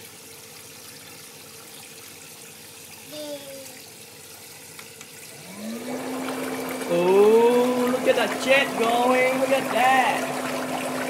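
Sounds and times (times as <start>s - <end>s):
water churning and bubbling: 3.7s - 11.0s
foot spa motor humming: 4.7s - 11.0s
person's voice: 6.8s - 10.4s.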